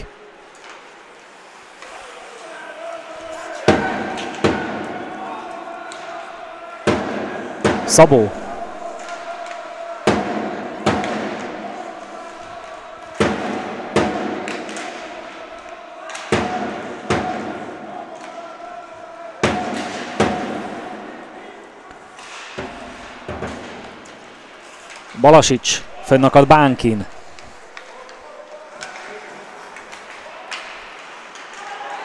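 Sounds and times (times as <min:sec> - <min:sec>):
sharp bangs echoing: 0:06.8 - 0:17.8.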